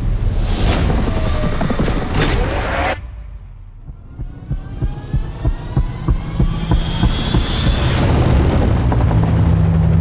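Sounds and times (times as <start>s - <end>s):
helicopter rotors beating: 3.8s - 10.0s
rising whine: 3.8s - 10.0s.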